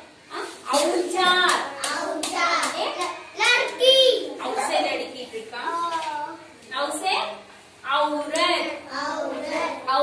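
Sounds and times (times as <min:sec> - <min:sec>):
sharp claps: 0:00.8 - 0:03.8.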